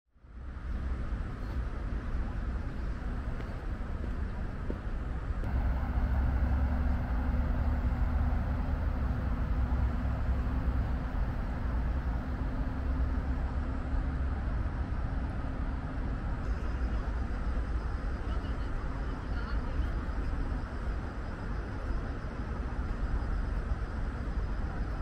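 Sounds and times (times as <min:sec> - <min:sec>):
road traffic rumble: 0:00.2 - 0:25.0.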